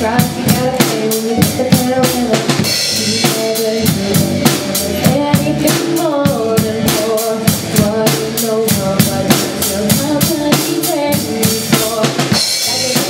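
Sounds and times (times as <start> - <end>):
bass guitar: 0.0 - 13.0
drum kit beat: 0.0 - 13.0
woman singing into a microphone: 0.0 - 13.0.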